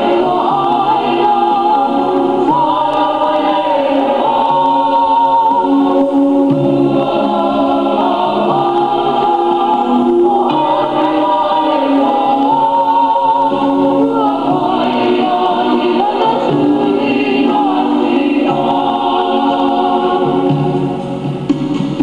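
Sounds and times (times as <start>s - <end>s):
choir singing: 0.0s - 22.0s.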